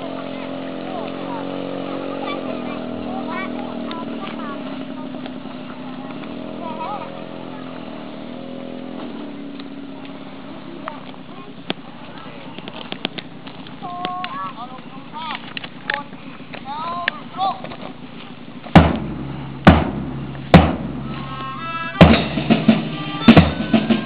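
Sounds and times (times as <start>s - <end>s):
sharp clicks: 10.9s - 14.4s.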